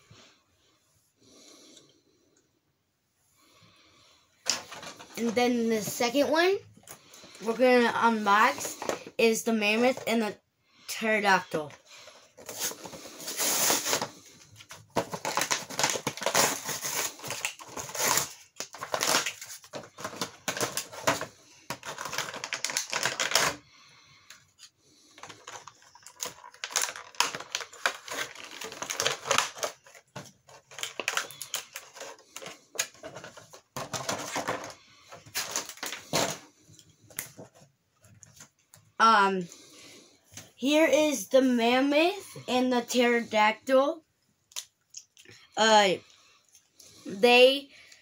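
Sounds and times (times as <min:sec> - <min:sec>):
plastic packaging crinkling: 0:06.9 - 0:09.2, 0:12.0 - 0:23.6, 0:25.0 - 0:38.5.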